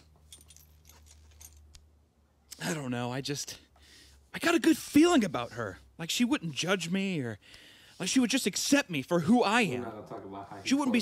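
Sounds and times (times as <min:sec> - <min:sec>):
light metallic clinks and jingles: 0:00.0 - 0:01.9.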